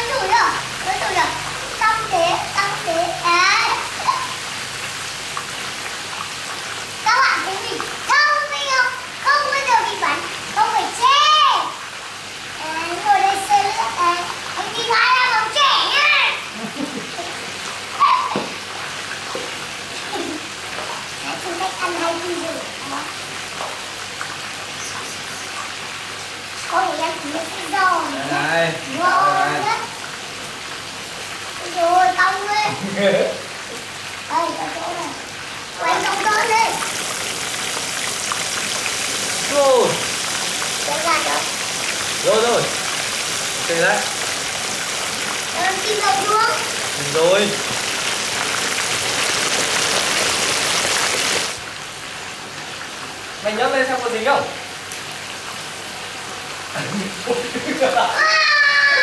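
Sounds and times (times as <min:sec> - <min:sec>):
fish sizzling in hot oil: 0:00.0 - 0:59.0.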